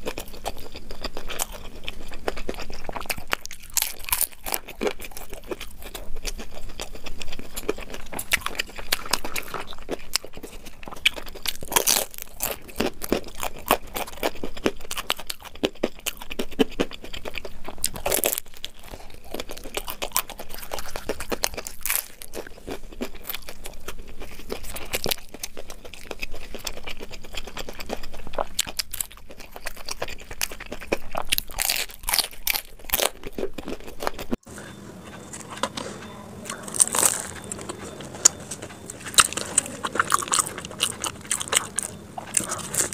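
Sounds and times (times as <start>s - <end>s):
crunchy food being chewed: 0.0s - 42.9s.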